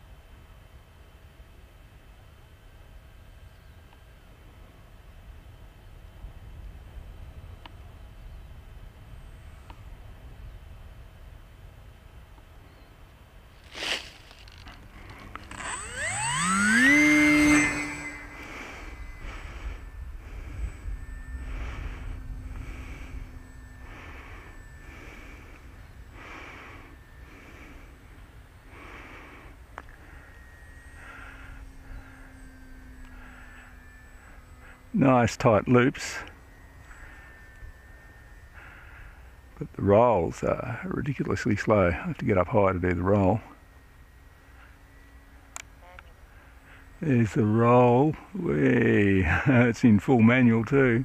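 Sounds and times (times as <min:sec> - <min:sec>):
electric motor whine: 0:00.0 - 0:51.0
wind rumbling on microphone: 0:17.8 - 0:30.5.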